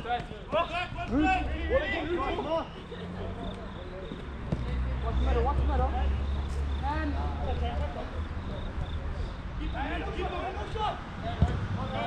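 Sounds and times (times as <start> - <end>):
distant shouts of players: 0.3 - 7.2.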